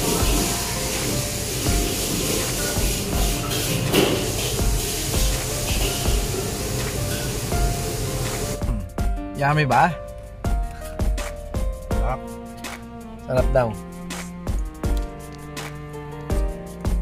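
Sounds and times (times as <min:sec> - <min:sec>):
wok kitchen hiss: 0:00.0 - 0:08.6
music with low beat: 0:00.0 - 0:17.0.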